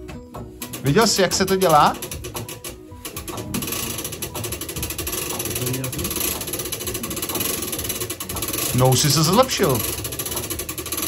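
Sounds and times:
clock winding ratchet clicking: 0.6s - 11.0s.

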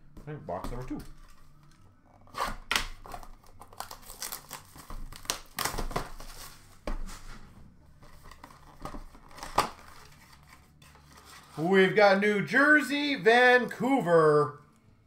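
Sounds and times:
cardboard and plastic tearing: 1.1s - 7.2s, 8.0s - 11.6s.

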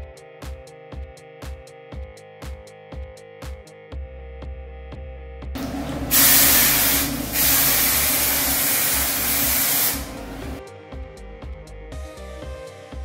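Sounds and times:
background music: 0.0s - 13.0s
hairspray hissing: 5.6s - 10.6s.

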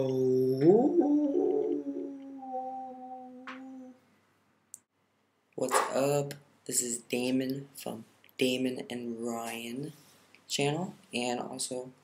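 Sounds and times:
man's voice into cupped hands: 0.0s - 4.0s.

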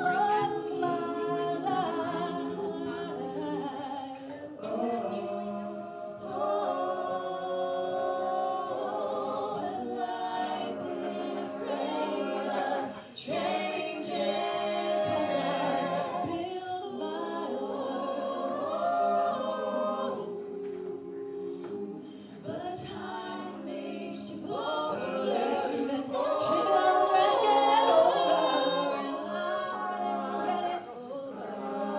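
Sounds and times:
group singing wordless harmony: 0.0s - 31.9s.

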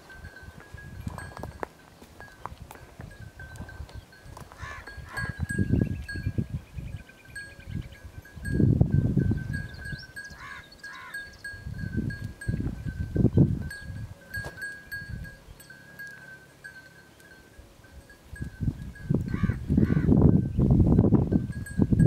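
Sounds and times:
sheep and goats bleating: 4.3s - 5.5s, 10.3s - 11.3s.

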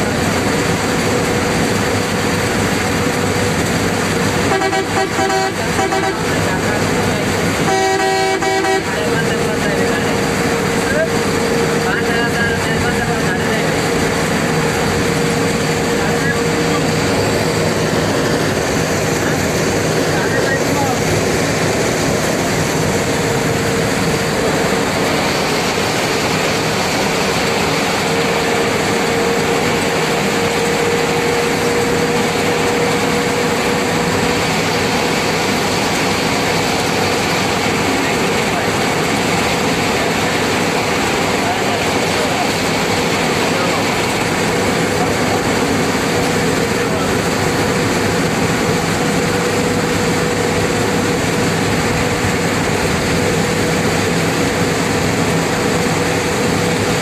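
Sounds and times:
road and engine noise: 0.0s - 57.0s
vehicle horn: 4.5s - 6.4s, 7.6s - 9.1s.

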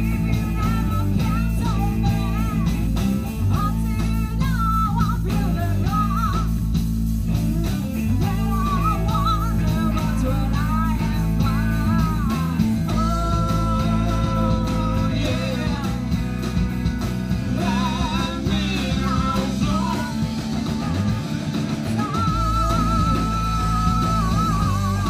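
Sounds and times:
live rock band playing: 0.0s - 25.0s.

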